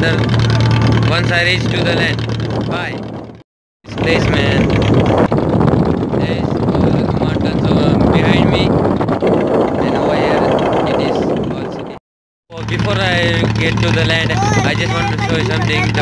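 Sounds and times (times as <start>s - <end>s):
wind buffeting microphone: 0.0s - 12.0s, 12.6s - 16.0s
boat engine running: 0.0s - 16.0s.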